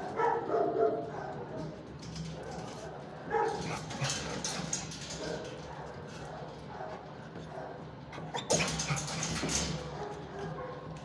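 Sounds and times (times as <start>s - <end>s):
dog bark echoing: 0.2s - 1.4s.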